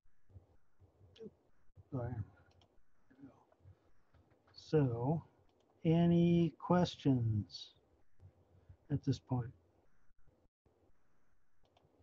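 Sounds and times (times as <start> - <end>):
wordless vocal sound: 2.0 - 2.4
computer mouse clicks: 2.4 - 2.8, 11.6 - 11.9.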